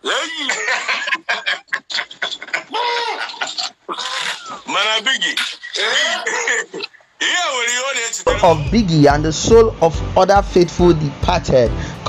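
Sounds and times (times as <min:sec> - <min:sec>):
man laughing hard: 0:00.1 - 0:04.6.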